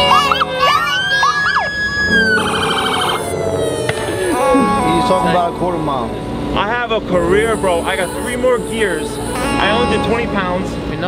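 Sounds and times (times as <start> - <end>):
police sirens wailing: 0.0 - 10.2.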